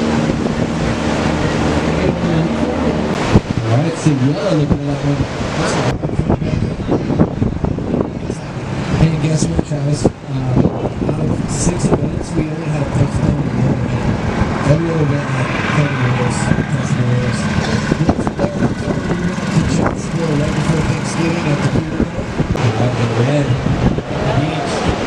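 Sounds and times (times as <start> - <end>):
ocean surf breaking: 0.0 - 25.0
wind: 0.0 - 25.0
indistinct talking: 8.1 - 25.0.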